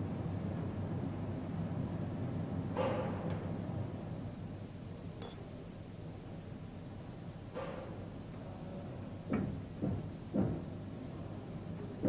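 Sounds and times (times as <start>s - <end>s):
machine low hum: 0.0s - 12.0s
dull mechanical knocks: 9.2s - 10.8s.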